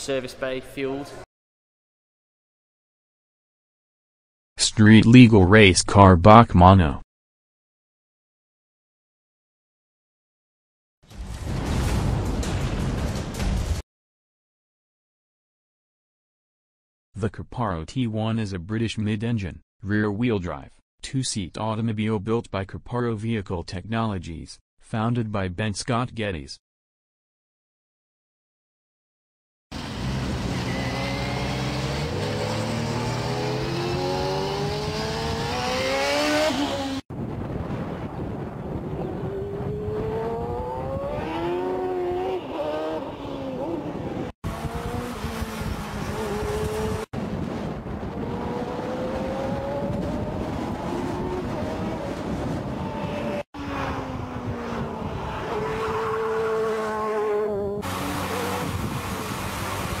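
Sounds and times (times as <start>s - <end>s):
car engine revving hard: 29.8s - 37.0s, 39.2s - 47.1s, 48.0s - 60.0s.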